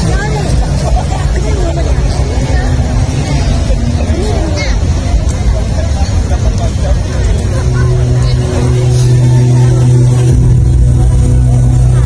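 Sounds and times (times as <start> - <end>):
crowd voices: 0.0 - 12.0
heavy low rumble: 0.0 - 12.0
steady low hum: 0.0 - 12.0.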